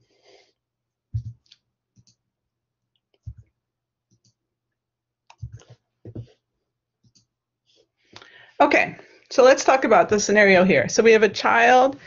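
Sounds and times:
computer mouse clicks: 0:01.2 - 0:02.2, 0:04.1 - 0:04.4, 0:05.3 - 0:05.8, 0:07.0 - 0:07.3.

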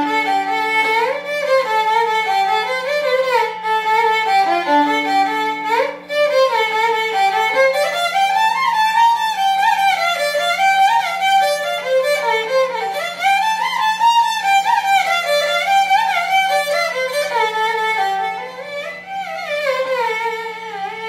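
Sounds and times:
solo violin melody: 0:00.0 - 0:21.0.

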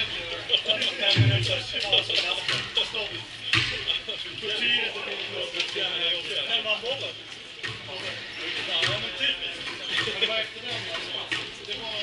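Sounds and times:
voices chatting: 0:00.0 - 0:12.0.

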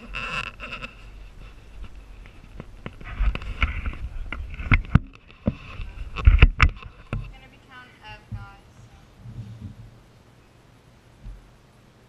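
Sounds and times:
person speaking: 0:07.3 - 0:09.3
knocks and heavy thumps: 0:08.3 - 0:08.6, 0:09.2 - 0:10.0, 0:11.2 - 0:11.5.

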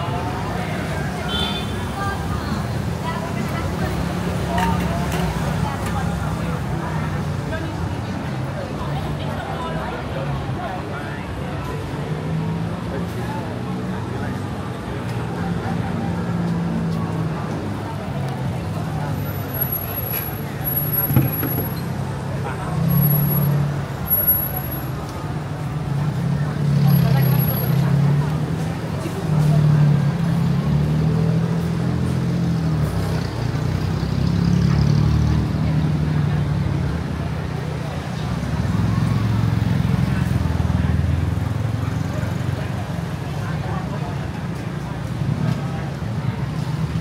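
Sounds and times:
crowd chatter: 0:00.0 - 0:47.0
traffic running past: 0:00.0 - 0:47.0.

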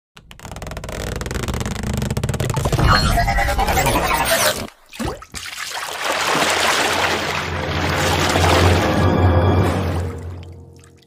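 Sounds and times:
intro music: 0:07.5 - 0:11.0.

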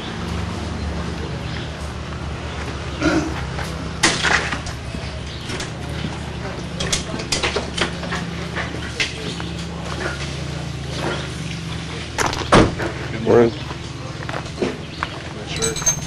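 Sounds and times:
people talking: 0:04.8 - 0:16.0.

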